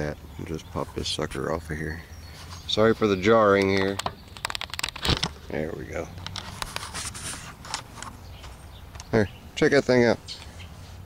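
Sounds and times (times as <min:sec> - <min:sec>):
camera handling knocks and rubs: 0:06.2 - 0:08.6.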